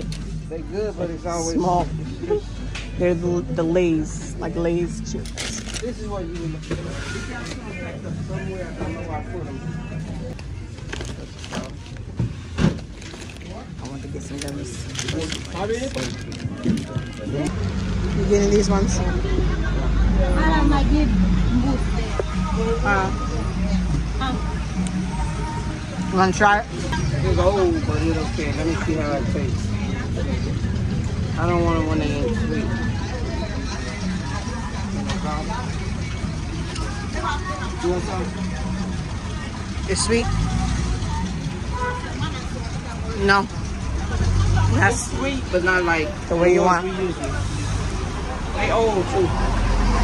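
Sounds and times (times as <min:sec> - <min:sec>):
motor vehicle engine rumbling: 0:00.0 - 0:50.0
faint background voices: 0:04.3 - 0:50.0.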